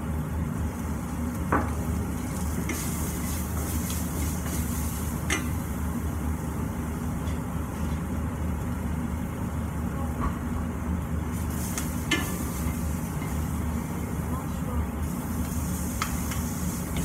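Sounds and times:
range hood fan drone: 0.0 - 17.0
food sizzling in a pan: 0.5 - 9.5, 11.2 - 17.0.

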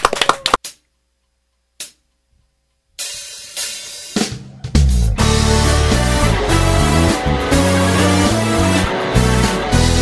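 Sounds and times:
handclapping: 0.0 - 0.8
live rock band playing: 4.2 - 10.0.

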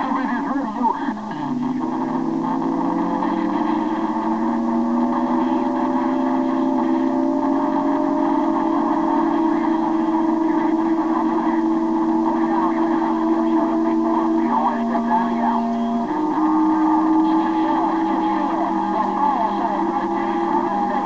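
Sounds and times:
garbled radio audio: 0.0 - 21.0
radio whistle tones rising: 1.0 - 21.0.

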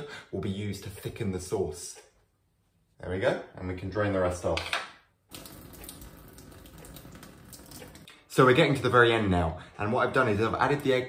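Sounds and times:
water pouring into sink: 5.3 - 8.1.

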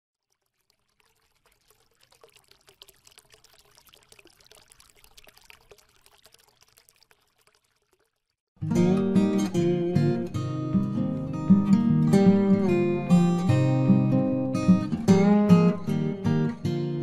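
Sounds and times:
fizzing trickling clicks: 0.2 - 8.4.

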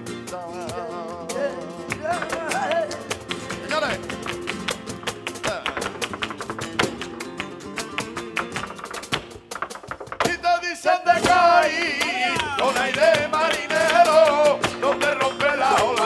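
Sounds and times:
man singing: 0.0 - 4.0, 10.2 - 16.0
guitars playing: 0.0 - 10.2, 11.1 - 16.0
rhythmic hand-clapping: 1.3 - 16.0.

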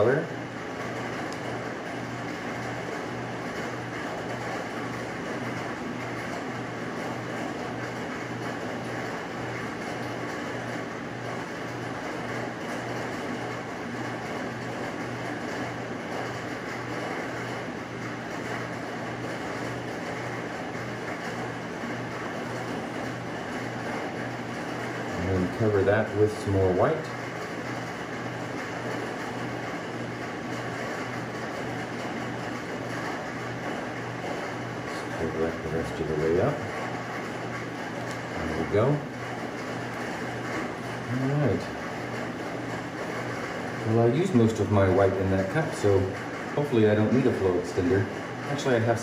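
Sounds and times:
rain on a tin roof: 0.0 - 49.0.

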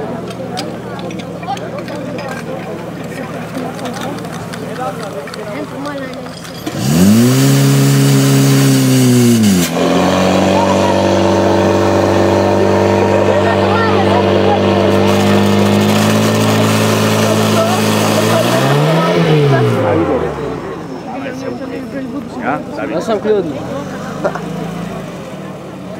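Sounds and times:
pump engine revving: 2.4 - 20.9.

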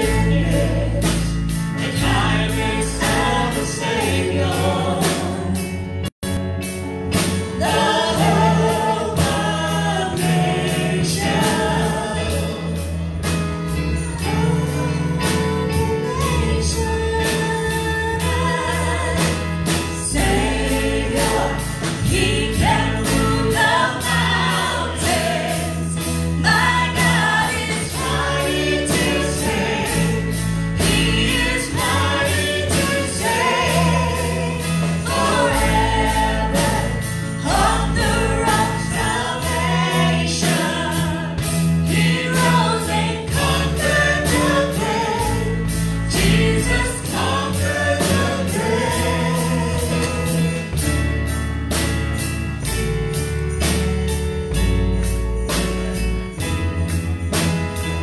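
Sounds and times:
voices singing together: 0.0 - 6.1, 7.2 - 51.1
bass line: 0.0 - 58.0
steady drum beat: 0.0 - 58.0.

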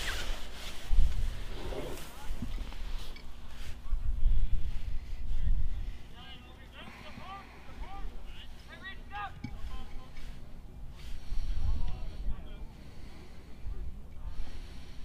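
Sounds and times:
wind rumble on microphone: 0.0 - 6.0
distant players shouting: 5.9 - 13.8.

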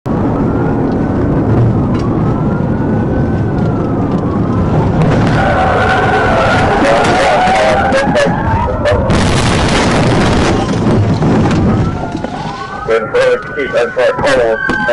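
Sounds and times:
engine and road noise: 0.1 - 14.9
police siren wailing: 0.1 - 14.9.

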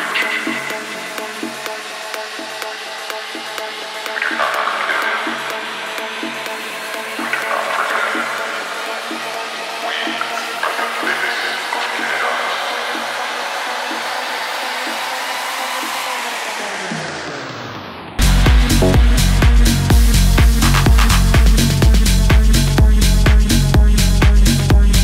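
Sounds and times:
techno music: 0.0 - 25.0.

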